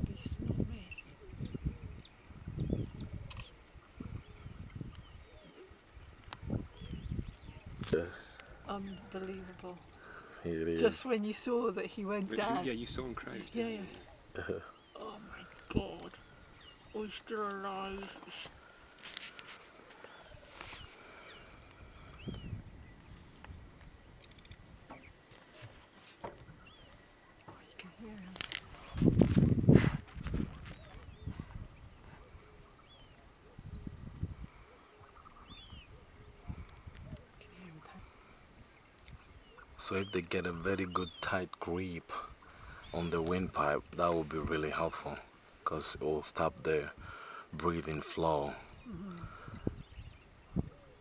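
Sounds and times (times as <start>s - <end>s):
rustling in dry grass: 15.0s - 27.2s, 28.2s - 32.6s.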